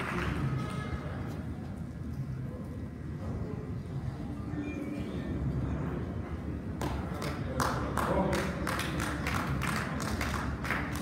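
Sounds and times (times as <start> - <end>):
audience clapping: 0.0 - 0.8, 6.8 - 11.0
low rumble in hall: 0.0 - 11.0.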